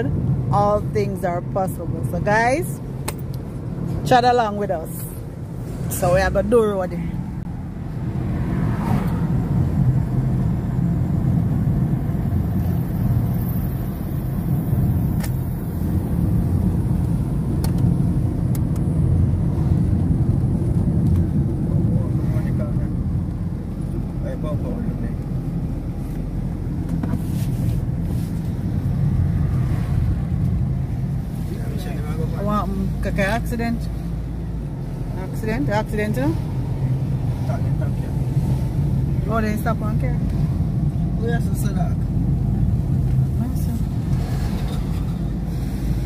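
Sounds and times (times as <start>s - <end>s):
car engine and road rumble: 0.0s - 46.0s.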